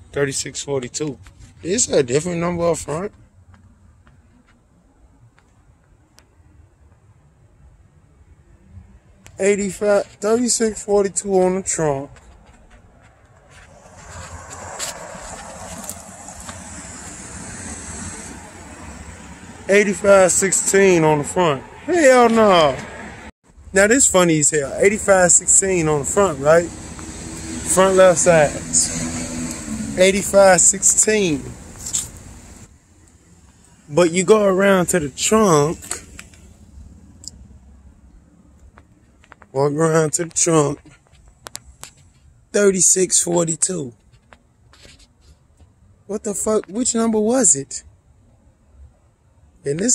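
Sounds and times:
road traffic rushing: 0.0 - 45.3
faint footsteps on pavement: 0.3 - 7.1, 9.1 - 28.7, 29.4 - 36.6, 38.1 - 42.5, 43.2 - 46.8.

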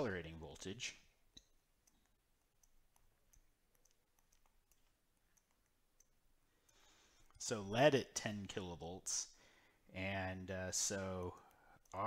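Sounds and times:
stylus tapping on tablet screen: 1.3 - 6.8.

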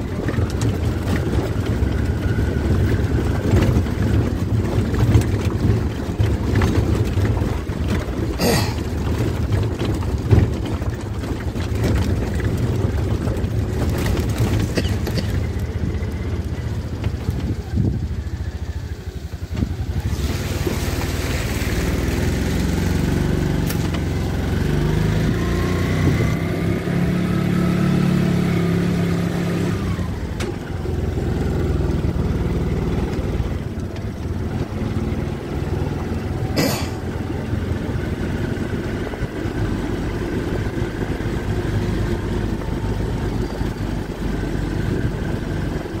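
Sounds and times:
vehicle engine running: 0.0 - 46.0.

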